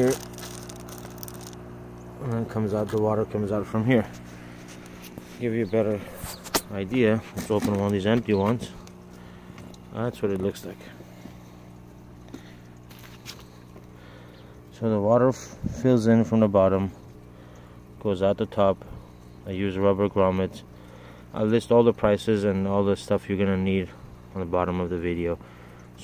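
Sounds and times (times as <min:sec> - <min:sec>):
pump humming: 0:00.0 - 0:26.0.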